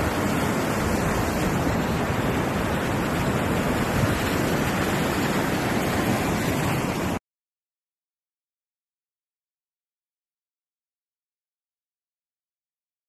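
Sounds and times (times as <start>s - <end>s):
breaking surf: 0.0s - 7.2s
wind buffeting microphone: 0.0s - 7.2s
wind roaring: 0.0s - 7.2s.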